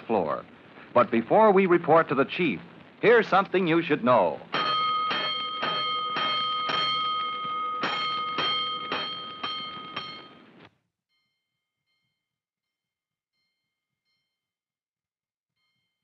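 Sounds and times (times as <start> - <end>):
fire alarm bell strokes: 4.5 - 12.3.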